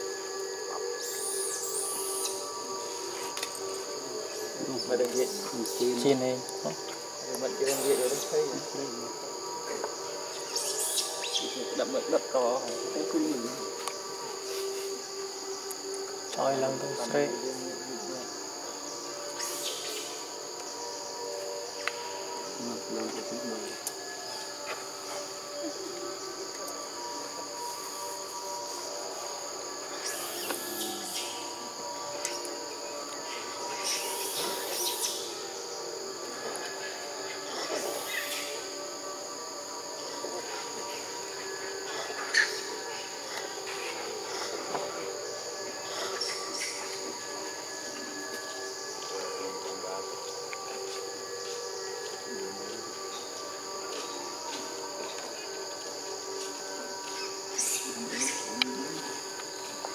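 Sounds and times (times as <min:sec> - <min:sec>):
high-pitched insect drone: 0:00.0 - 0:59.9.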